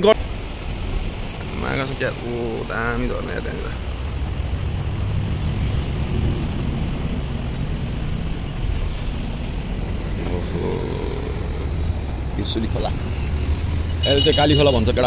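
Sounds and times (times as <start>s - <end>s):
engines idling: 0.0s - 15.0s.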